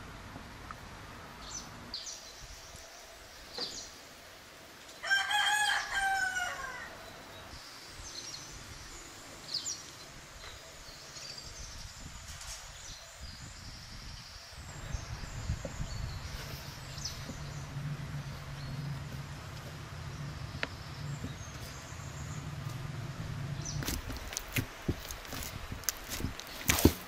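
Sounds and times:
small birds chirping: 0:00.7 - 0:27.0
rooster crowing: 0:05.0 - 0:07.0.

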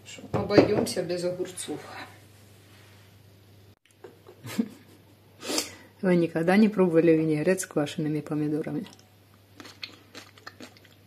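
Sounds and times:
person chewing food: 0:09.3 - 0:11.0.

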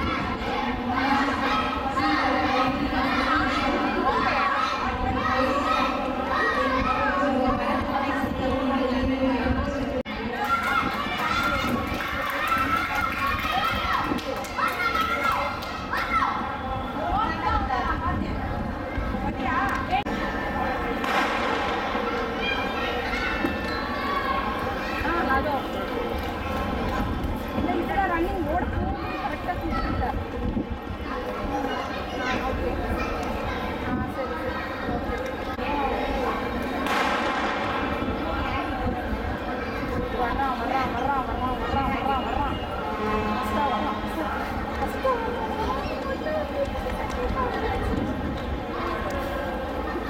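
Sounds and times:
children shouting: 0:00.0 - 0:07.9, 0:10.1 - 0:17.4, 0:21.0 - 0:27.2, 0:28.8 - 0:50.0
crowd hubbub: 0:00.0 - 0:50.0.

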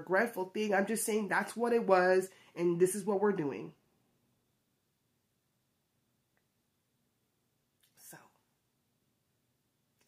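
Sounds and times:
soft breathy spoken word: 0:07.9 - 0:08.5.

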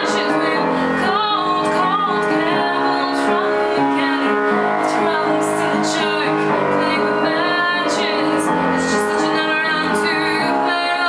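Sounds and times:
upright piano accompaniment: 0:00.0 - 0:11.0
woman singing: 0:00.0 - 0:11.0.

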